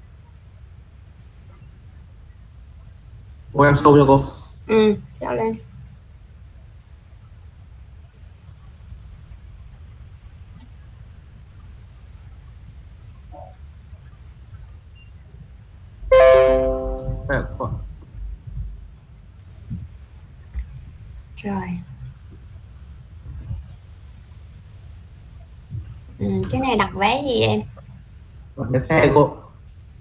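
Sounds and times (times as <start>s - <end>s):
low background rumble: 0.0s - 30.0s
high chirp: 16.1s - 17.6s
low rumble: 16.7s - 17.8s.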